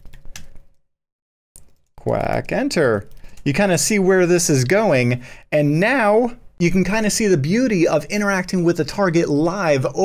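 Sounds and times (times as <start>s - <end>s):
computer keyboard clicks: 0.0s - 0.8s.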